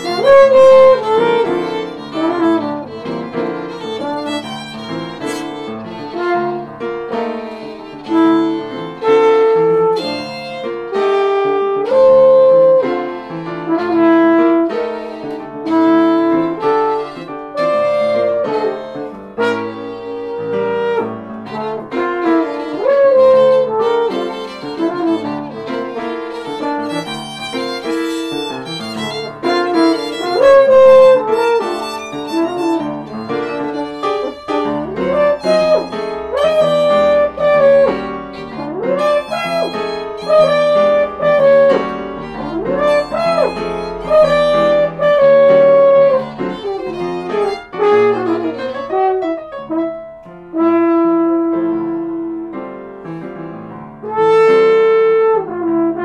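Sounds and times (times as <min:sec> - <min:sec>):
piano: 0:00.0 - 0:56.0
violin: 0:00.0 - 0:56.0
french horn: 0:54.0 - 0:56.0.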